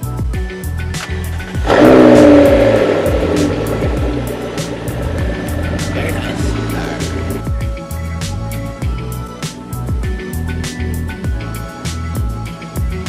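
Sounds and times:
background music with beat: 0.0 - 13.0
car engine starting and revving: 1.0 - 7.7.

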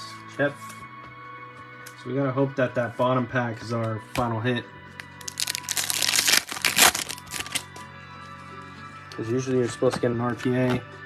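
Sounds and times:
background music: 0.0 - 11.0
wrapper tearing and crackling: 5.2 - 7.7.

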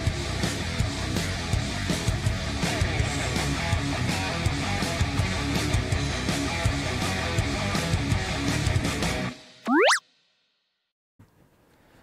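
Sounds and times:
upward gliding sound effect: 9.7 - 10.0.

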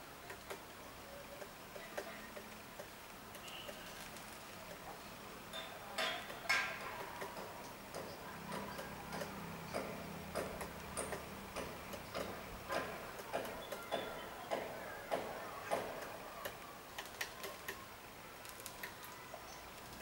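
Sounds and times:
woodpecker pecking wood: 5.6 - 20.0.

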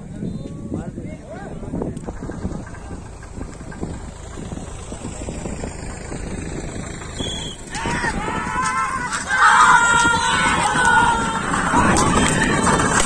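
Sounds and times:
bullock cart rumbling on dirt track: 0.0 - 13.0
spectators shouting: 7.2 - 13.0.

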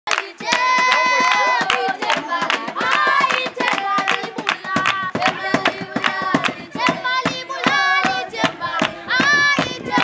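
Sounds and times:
hands clapping in rhythm: 0.1 - 10.0.

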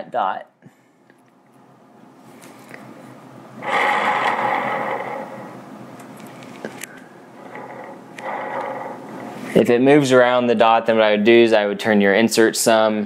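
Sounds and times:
arrow whirring on spinner: 3.6 - 9.7.

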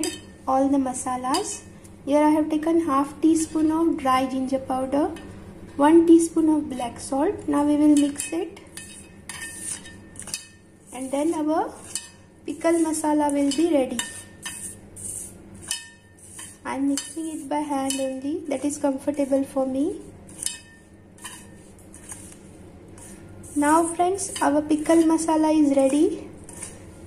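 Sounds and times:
powder scraping in metal bowl: 8.0 - 18.2, 19.1 - 26.9.

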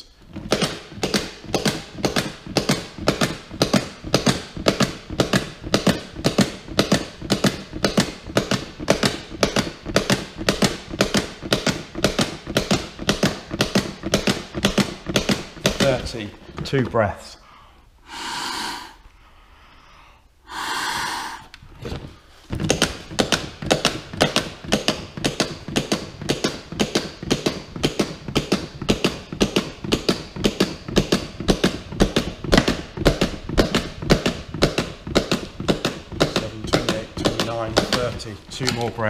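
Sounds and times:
breaths blown into manikin: 17.5 - 21.6.

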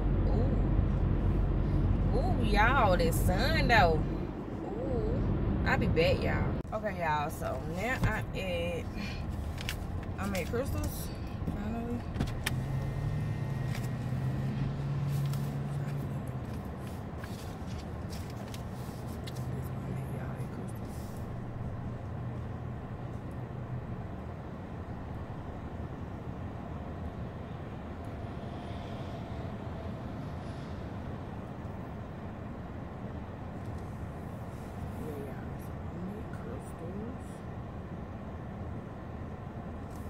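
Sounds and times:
car road and engine noise: 0.0 - 40.0.

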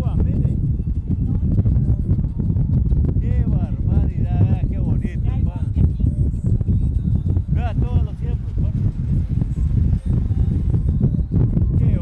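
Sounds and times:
wind buffeting microphone: 0.0 - 12.0
road noise: 7.3 - 11.0.

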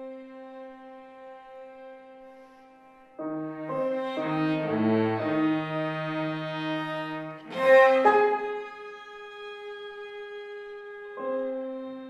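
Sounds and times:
violin cello and piano chamber music: 0.0 - 12.0.

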